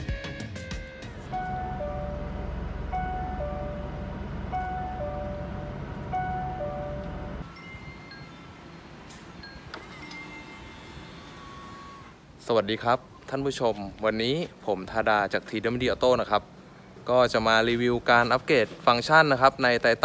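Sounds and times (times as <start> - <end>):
low engine rumble: 0.9 - 9.8
two-note warning chime: 1.2 - 8.6
faint higher beeps: 1.3 - 8.4.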